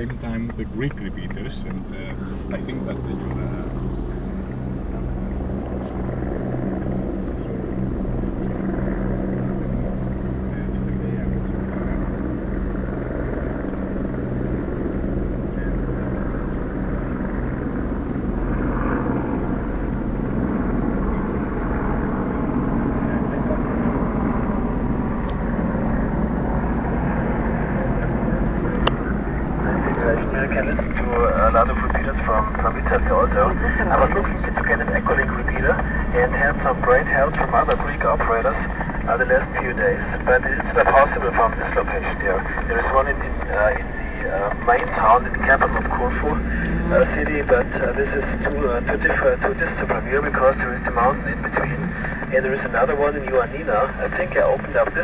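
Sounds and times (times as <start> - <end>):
car engine humming: 0.0 - 55.0
road and cabin noise: 0.0 - 55.0.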